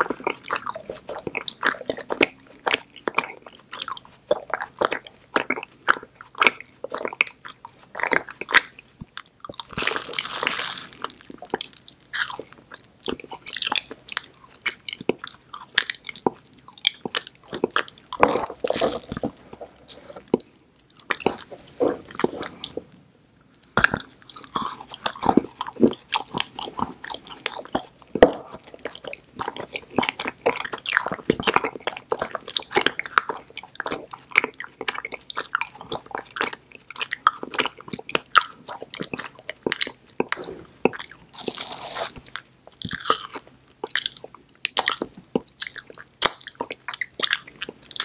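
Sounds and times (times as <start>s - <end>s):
close-miked chewing: 0.0s - 48.0s.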